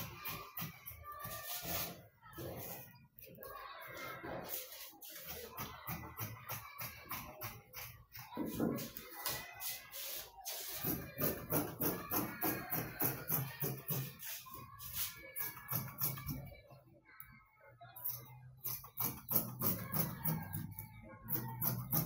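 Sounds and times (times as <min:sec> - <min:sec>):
shaker beat: 0:04.4 - 0:16.4.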